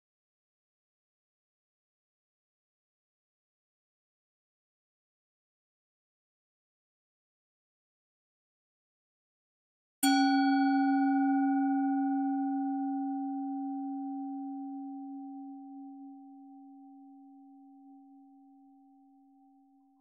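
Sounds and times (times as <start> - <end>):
singing bowl ringing: 10.0 - 17.2.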